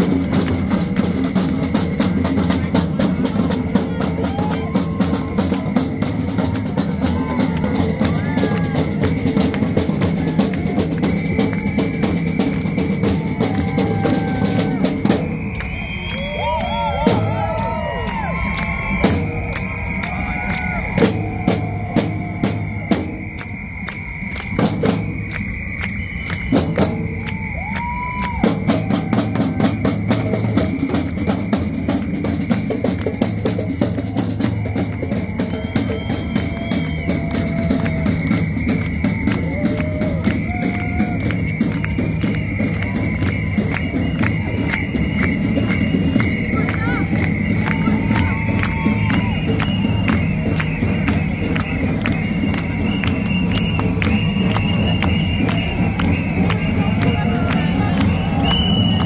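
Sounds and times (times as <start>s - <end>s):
marching drums playing: 0.0s - 59.0s.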